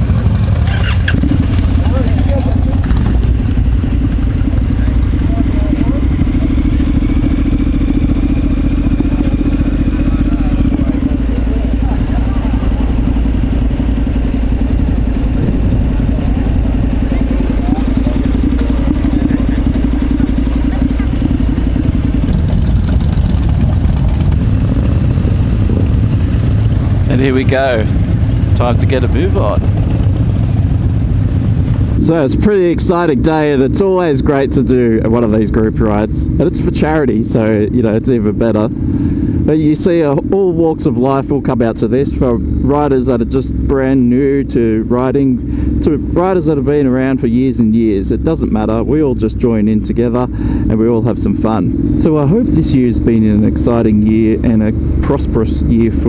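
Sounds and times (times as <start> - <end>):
motorcycle engine idling: 0.0 - 56.0
other motorcycles running: 0.0 - 56.0.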